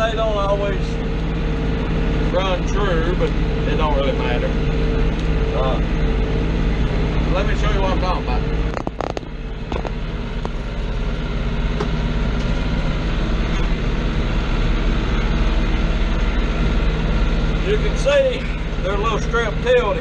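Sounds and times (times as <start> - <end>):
tractor diesel engine running: 0.0 - 20.0
sharp clicks: 8.7 - 10.6.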